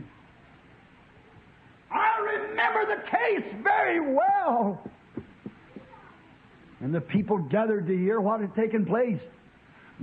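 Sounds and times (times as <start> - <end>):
recording hiss: 0.0 - 10.0
man speaking: 1.9 - 4.9, 6.8 - 9.3.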